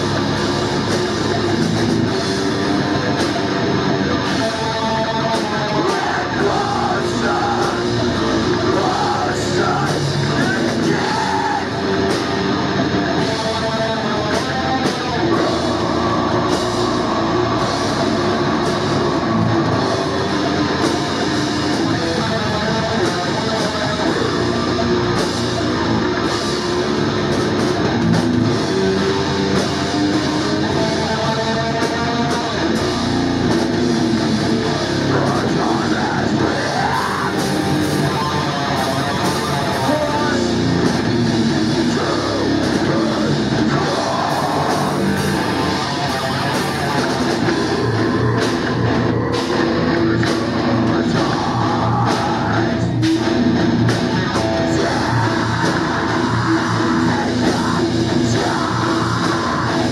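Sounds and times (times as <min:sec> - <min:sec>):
bass guitar: 0:00.0 - 0:59.9
distorted electric guitars: 0:00.0 - 0:59.9
drum kit: 0:00.0 - 0:59.9.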